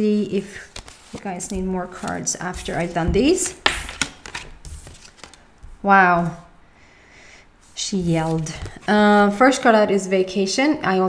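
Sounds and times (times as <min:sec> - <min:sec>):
cards tapping and sliding: 0:00.6 - 0:05.8
card clicking: 0:01.5 - 0:05.4.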